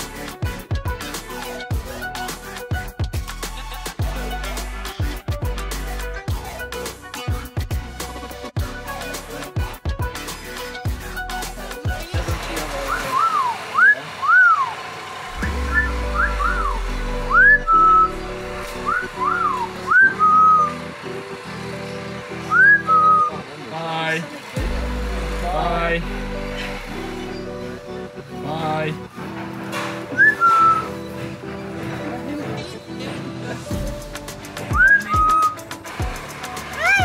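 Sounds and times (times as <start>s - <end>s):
background music: 0.0s - 37.0s
parrot whistling: 12.8s - 14.8s, 15.4s - 20.9s, 22.4s - 23.4s, 30.1s - 31.2s, 34.7s - 35.6s.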